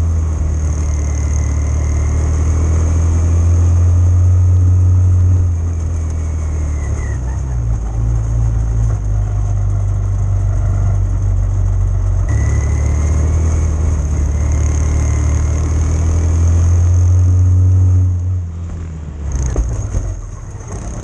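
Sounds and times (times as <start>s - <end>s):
small engine running: 0.0s - 3.0s, 12.3s - 17.3s
faint engine whine: 0.0s - 21.0s.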